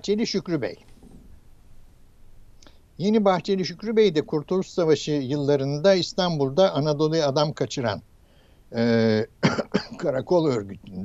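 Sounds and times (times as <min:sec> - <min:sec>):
man speaking: 0:00.0 - 0:00.8, 0:03.0 - 0:08.0, 0:08.8 - 0:11.0
man's hesitation sound: 0:08.8 - 0:11.0.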